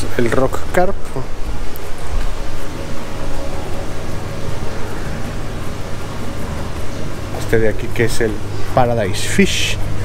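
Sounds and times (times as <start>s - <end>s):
indoor hall ambience hiss and hum: 0.0s - 10.0s.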